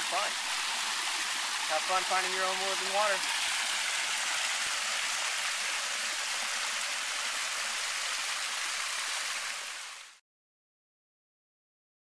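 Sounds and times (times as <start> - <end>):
water splashing into a pool: 0.0 - 10.2.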